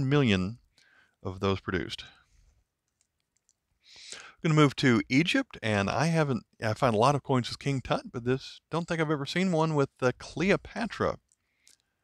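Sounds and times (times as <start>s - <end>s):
faint clicks: 2.8s - 3.6s
soft intake of breath: 3.8s - 4.4s.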